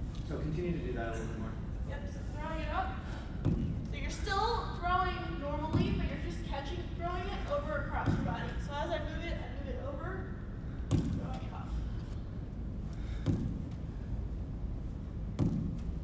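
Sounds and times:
ball caught in lacrosse stick: 0:15.4 - 0:15.9.

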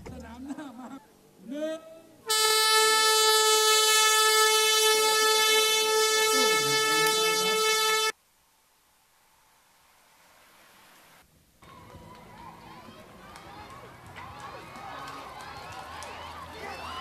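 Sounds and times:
air horn blast: 0:02.3 - 0:08.2.

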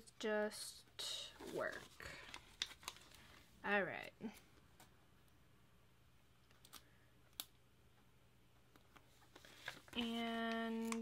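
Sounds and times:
paper crinkling: 0:01.3 - 0:03.4, 0:08.7 - 0:11.0.

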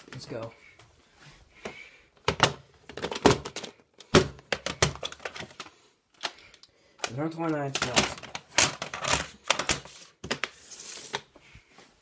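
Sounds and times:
plastic cassettes clattering: 0:02.2 - 0:10.5.

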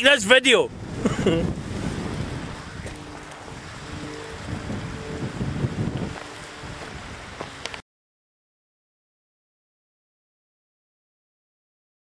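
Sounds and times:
wind rumbling on microphone: 0:00.6 - 0:07.8.

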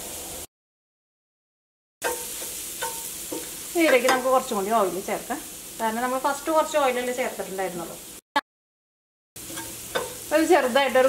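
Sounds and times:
garlic sizzling in oil: 0:00.0 - 0:00.5, 0:02.0 - 0:08.2, 0:09.4 - 0:11.0.

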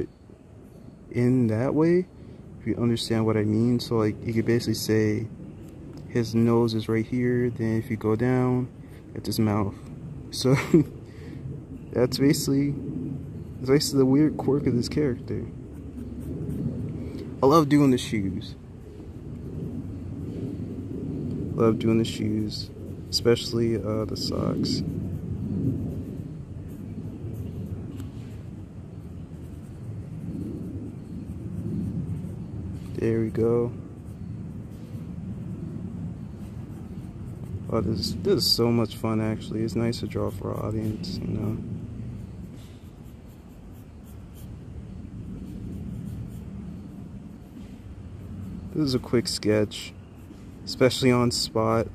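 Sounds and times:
low background hum: 0:00.0 - 0:51.9
low background rumble: 0:00.0 - 0:51.9
pencil scratching on paper: 0:22.0 - 0:28.4, 0:29.0 - 0:35.5, 0:36.2 - 0:39.0, 0:39.6 - 0:51.4.

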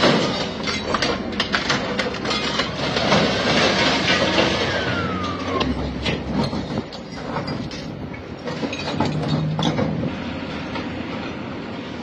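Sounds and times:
metal and debris clanking: 0:00.0 - 0:11.5
excavator engine running: 0:00.5 - 0:12.0.

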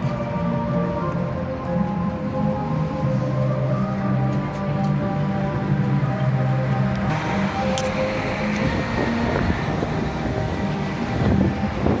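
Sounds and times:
traffic rumble: 0:00.0 - 0:12.0
wind buffeting microphone: 0:07.0 - 0:12.0.

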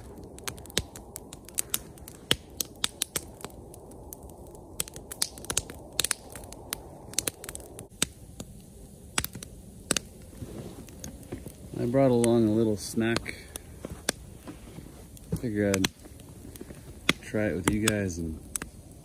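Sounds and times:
low rushing noise: 0:00.0 - 0:16.4
wood fire crackling: 0:00.0 - 0:19.0.

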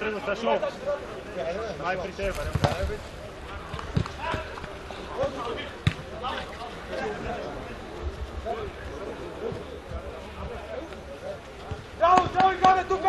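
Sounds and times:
football kicked with thuds: 0:02.3 - 0:03.0
players shouting: 0:11.7 - 0:13.0.

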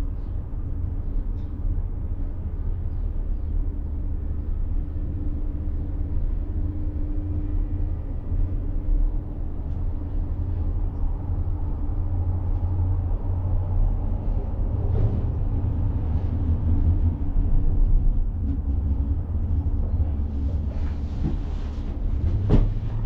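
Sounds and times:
gondola cabin rumble: 0:00.0 - 0:23.0.

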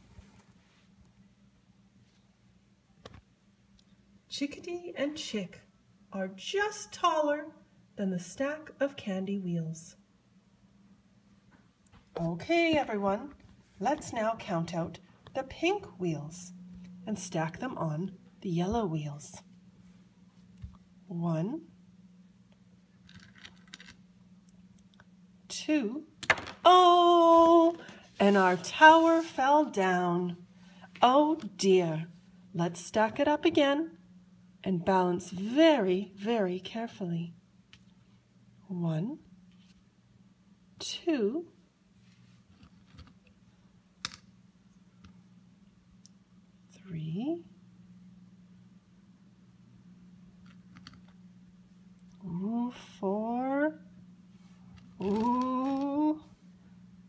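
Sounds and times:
faint steady hum: 0:00.0 - 0:57.0
candies clicking and rustling: 0:23.0 - 0:24.0.

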